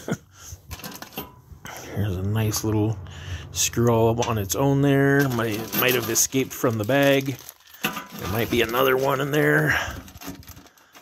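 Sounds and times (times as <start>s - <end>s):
person laughing: 0.0s - 0.5s.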